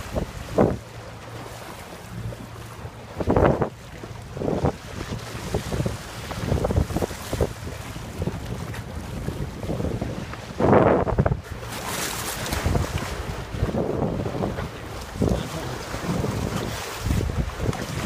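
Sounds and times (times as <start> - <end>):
water rushing past boat hull: 0.0 - 18.0
wind buffeting microphone: 0.0 - 18.0.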